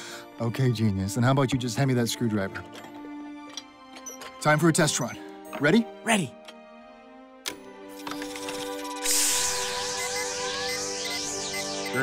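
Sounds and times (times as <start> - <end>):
sustained music notes: 9.0 - 12.0
whistling swooping tones: 9.0 - 12.0.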